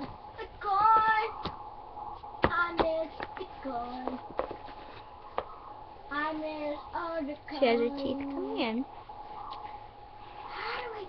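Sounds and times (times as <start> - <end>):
faint steady hum: 0.0 - 11.0
high voice: 6.1 - 8.7.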